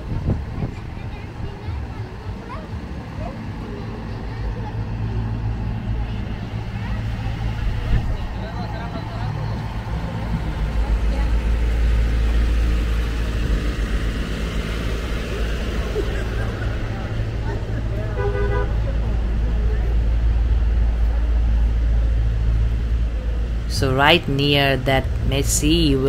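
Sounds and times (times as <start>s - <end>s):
people's voices: 0.0s - 26.0s
vehicle engine rumble: 0.0s - 26.0s.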